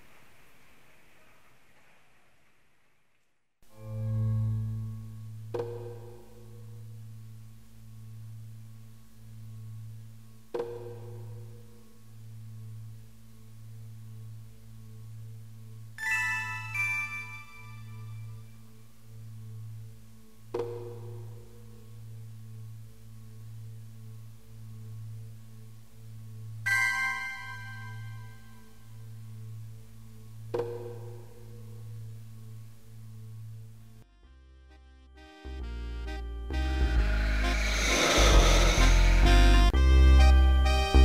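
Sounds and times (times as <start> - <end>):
light hiss: 0.0 - 3.3
low electronic drone: 3.7 - 16.0, 17.6 - 41.0
faint pulsing high tone: 26.4 - 30.4.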